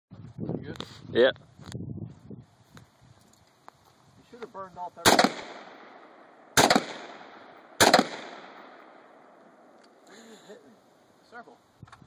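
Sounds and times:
gunshot echo: 0:05.0 - 0:09.7
rifle shots: 0:05.0 - 0:09.8.

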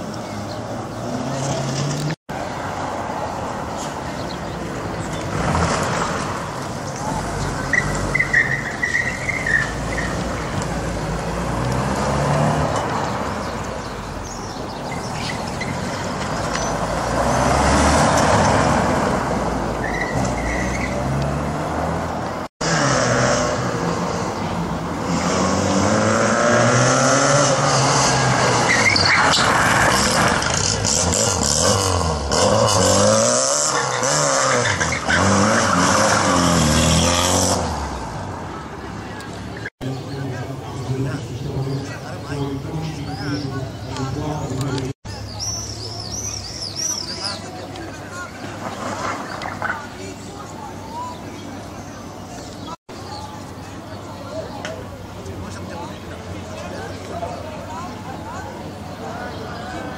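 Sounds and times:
car engines revving: 0:00.0 - 0:59.9
tyre squeals: 0:07.6 - 0:10.3, 0:19.8 - 0:21.1, 0:28.6 - 0:30.7.

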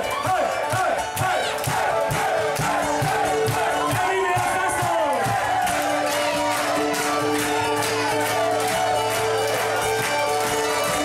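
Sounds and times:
crowd shouting and singing: 0:00.0 - 0:11.0
live band music: 0:00.0 - 0:11.0.

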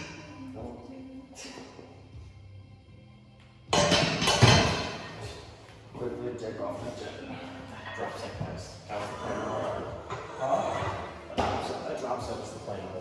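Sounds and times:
barbell clanking onto metal hooks: 0:03.7 - 0:05.0.

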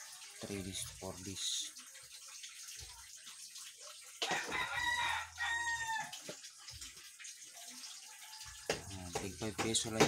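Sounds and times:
rooster crowing: 0:04.3 - 0:06.2.

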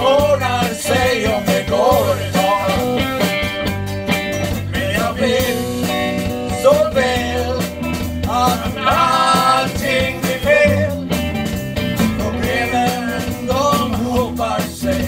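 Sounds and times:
men singing: 0:00.0 - 0:03.5, 0:04.4 - 0:11.3, 0:11.9 - 0:15.0
drums: 0:00.0 - 0:15.0
electric bass: 0:00.0 - 0:15.0
electric guitar: 0:00.0 - 0:15.0.

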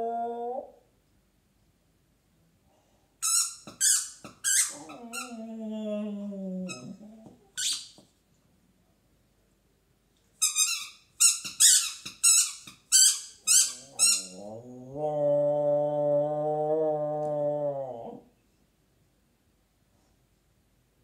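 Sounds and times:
puppy howling: 0:00.0 - 0:00.8, 0:04.7 - 0:07.4
squeaky toy squeaking: 0:03.2 - 0:05.3, 0:07.6 - 0:08.0, 0:10.4 - 0:14.4.

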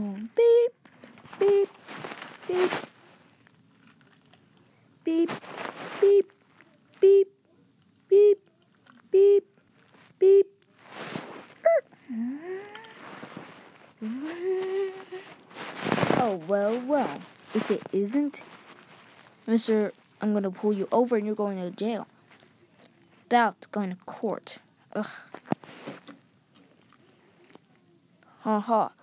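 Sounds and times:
boy whooping: 0:11.6 - 0:12.9.

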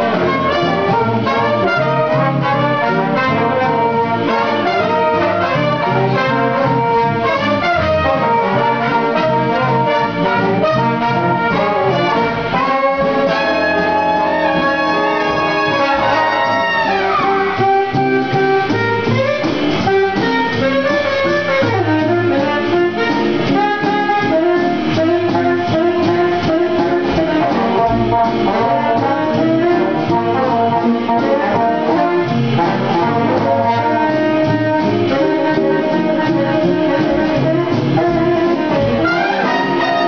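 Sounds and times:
jazz big band playing: 0:00.0 - 0:40.0
horns sliding downward: 0:10.0 - 0:40.0.

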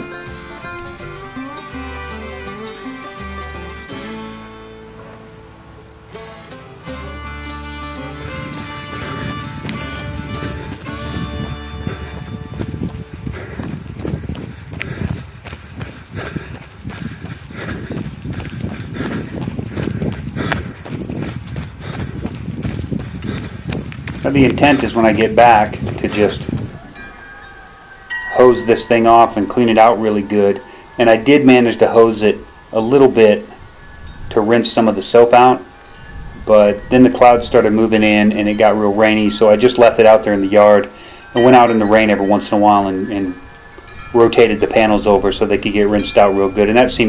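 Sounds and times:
background music: 0:00.0 - 0:13.2
footfalls on a trail: 0:08.5 - 0:27.6.

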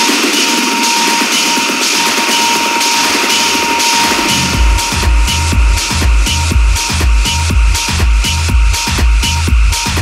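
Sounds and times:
steady high tone: 0:00.0 - 0:09.1
hi-hat-like percussion: 0:00.0 - 0:10.0
kick and bass: 0:00.0 - 0:10.0.

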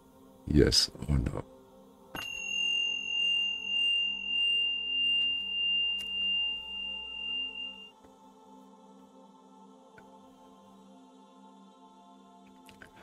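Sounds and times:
soft ambient music: 0:00.0 - 0:13.0
sustained high ringing tone: 0:02.1 - 0:08.0.

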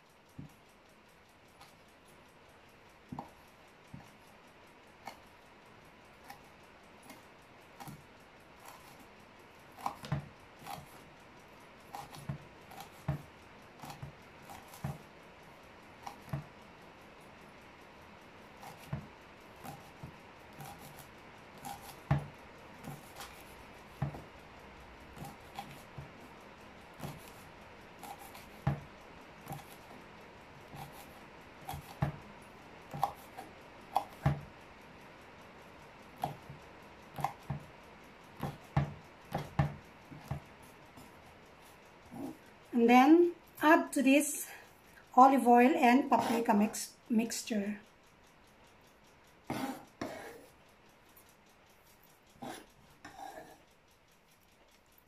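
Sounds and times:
knife chopping on wooden board: 0:09.8 - 0:10.9, 0:21.6 - 0:24.3, 0:28.0 - 0:28.9, 0:31.7 - 0:32.2, 0:38.4 - 0:40.4.

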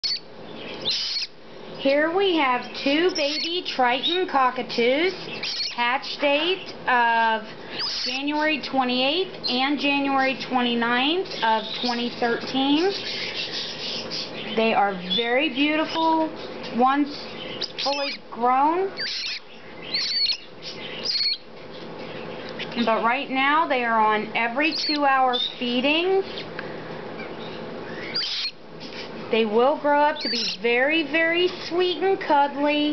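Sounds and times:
cockatoo chick begging calls: 0:00.0 - 0:01.4, 0:02.6 - 0:04.3, 0:05.1 - 0:05.9, 0:07.7 - 0:08.6, 0:17.2 - 0:21.5, 0:24.6 - 0:25.6, 0:27.2 - 0:28.6, 0:30.2 - 0:30.7
chicks giving begging calls: 0:00.0 - 0:32.9.

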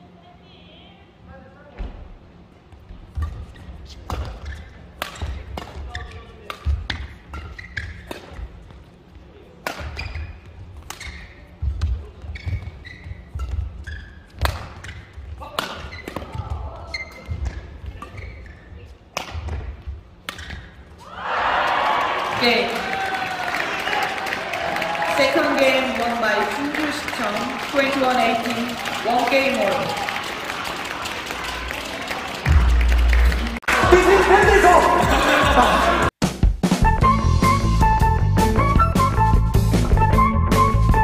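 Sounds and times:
racket hitting shuttlecock: 0:03.1 - 0:08.8, 0:09.6 - 0:20.8
shoe squeaks: 0:03.2 - 0:08.6, 0:09.8 - 0:19.0, 0:20.2 - 0:21.0.

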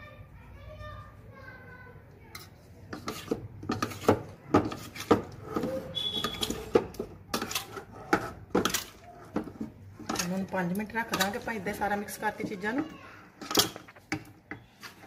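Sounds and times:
metal spoon scraping steel plate: 0:02.3 - 0:11.8.

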